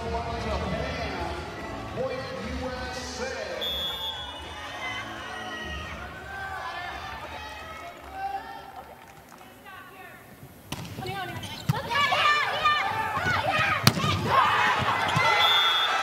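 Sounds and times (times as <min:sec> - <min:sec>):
crowd voices: 0:00.0 - 0:16.0
players shouting: 0:03.1 - 0:16.0.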